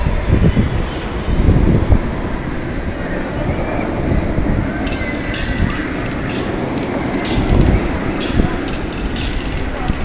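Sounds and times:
gondola car low rumble: 0:00.0 - 0:10.0
wind buffeting microphone: 0:00.0 - 0:10.0.

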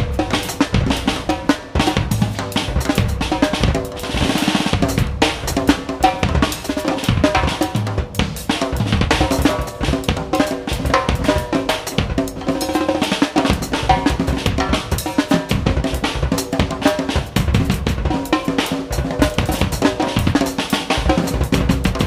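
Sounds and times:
drum kit played freely: 0:00.0 - 0:22.0.

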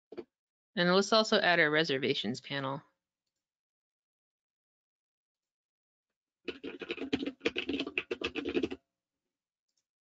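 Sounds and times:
keyboard typing: 0:06.5 - 0:08.8.

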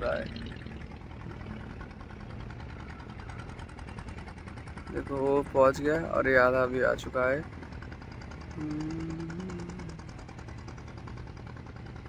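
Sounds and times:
boat engine chugging: 0:00.0 - 0:12.0.

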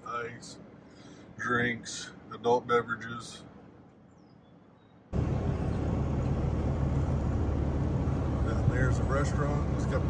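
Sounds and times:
pickup truck engine: 0:05.2 - 0:10.0.

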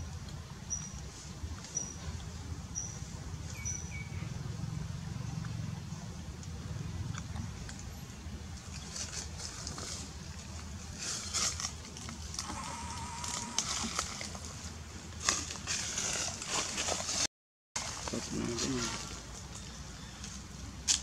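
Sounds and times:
rustling and crackling branches: 0:04.4 - 0:21.0.

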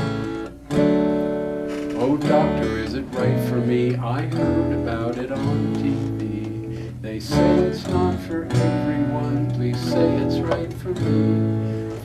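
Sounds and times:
acoustic guitar strumming chords: 0:00.0 - 0:12.0.

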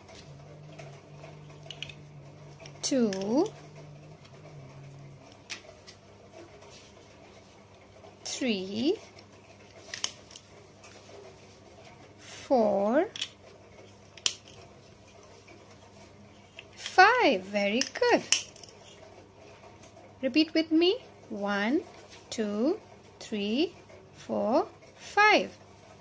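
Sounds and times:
steady low hum: 0:00.0 - 0:26.0
plastic toy blocks clicking: 0:01.6 - 0:02.0, 0:02.6 - 0:03.5, 0:13.1 - 0:13.4, 0:14.2 - 0:14.6, 0:17.8 - 0:18.7.

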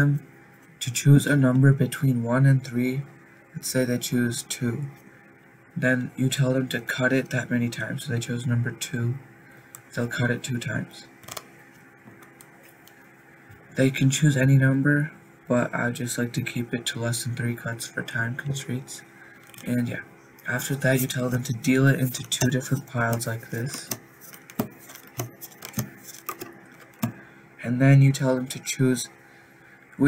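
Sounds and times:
playing cards clicking: 0:11.2 - 0:11.5, 0:22.1 - 0:27.2.

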